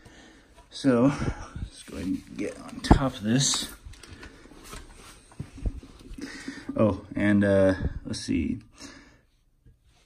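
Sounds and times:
shuffling handling noise: 0:00.0 - 0:08.2.

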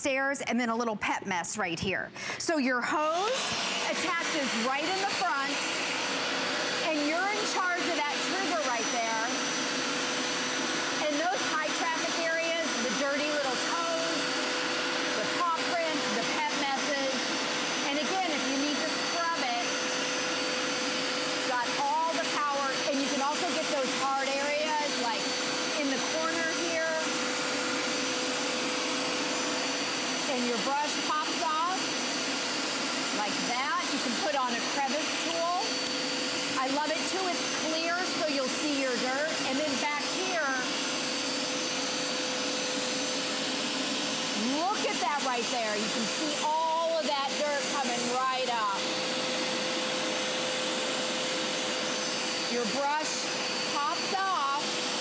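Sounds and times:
carpet cleaner running: 0:02.3 - 0:55.0.

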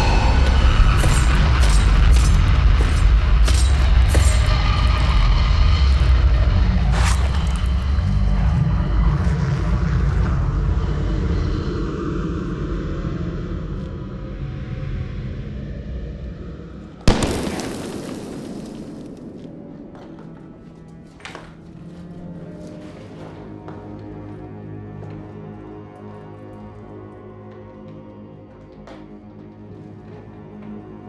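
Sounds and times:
deep rumble of explosions: 0:17.0 - 0:21.0
loud gunshot: 0:17.1 - 0:19.5
gunfire cracks: 0:17.1 - 0:20.0.

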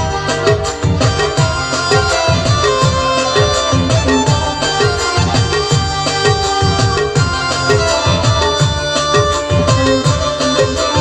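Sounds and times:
drum beat with bending low strokes: 0:00.0 - 0:11.0
held melody notes: 0:00.0 - 0:11.0.

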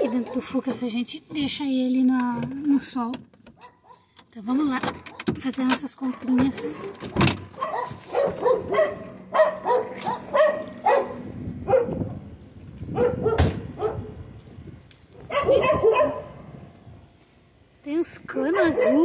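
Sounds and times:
dog barking: 0:00.0 - 0:00.6, 0:03.6 - 0:04.0, 0:06.0 - 0:07.0, 0:07.6 - 0:12.1, 0:12.9 - 0:14.2, 0:15.2 - 0:16.4, 0:18.5 - 0:19.0.

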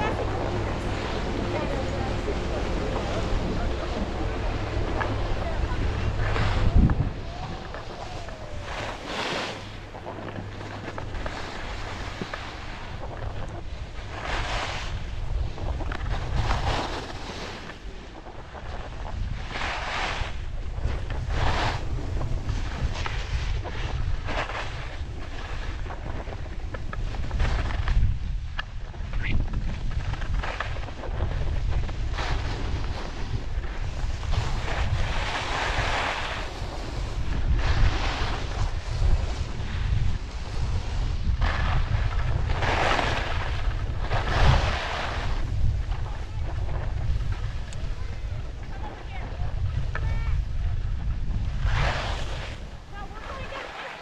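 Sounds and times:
wind buffeting microphone: 0:00.0 - 0:53.7
skis scraping on snow: 0:00.0 - 0:54.0.

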